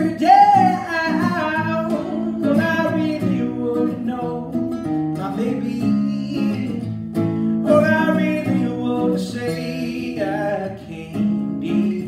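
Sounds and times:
man singing: 0.0 - 7.0, 7.6 - 12.0
strummed acoustic guitar: 0.0 - 12.0.

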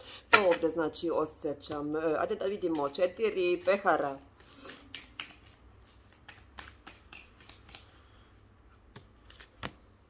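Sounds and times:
cards rustling: 2.4 - 8.0, 8.8 - 10.0.

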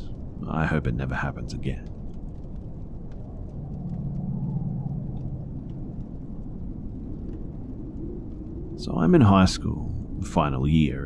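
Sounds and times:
faint crackles: 0.0 - 11.0
low rumbling ambience: 0.0 - 11.0.

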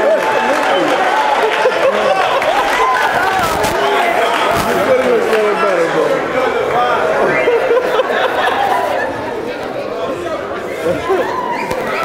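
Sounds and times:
overlapping indistinct chatter: 0.0 - 12.0.

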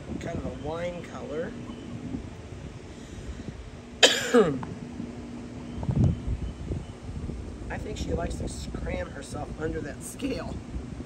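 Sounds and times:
person coughing: 4.0 - 4.6.

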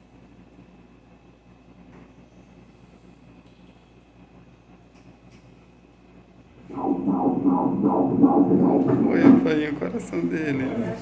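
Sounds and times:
fetal heartbeat on doppler speaker: 6.7 - 9.6.

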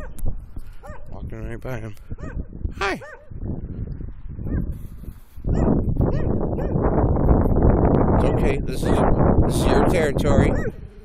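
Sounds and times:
dog barking: 0.8 - 1.1, 2.2 - 3.3, 4.4 - 4.7, 5.5 - 6.8, 10.5 - 10.8.

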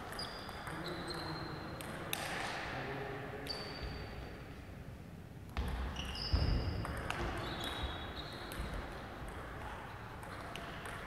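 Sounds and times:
shoes squeaking on floor: 5.9 - 8.5.

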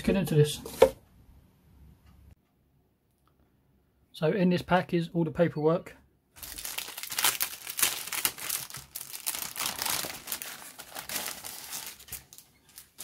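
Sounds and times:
plastic bag crinkling: 6.4 - 13.0.

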